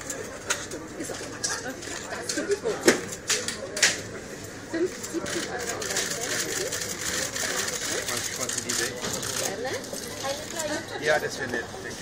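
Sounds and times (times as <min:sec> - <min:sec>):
murmur of voices: 0:00.0 - 0:12.0.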